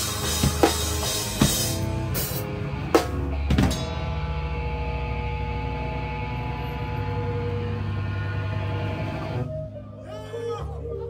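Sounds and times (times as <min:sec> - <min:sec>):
drum and cymbal hits: 0:00.0 - 0:04.9
guitar and bass chords ringing: 0:00.0 - 0:11.0.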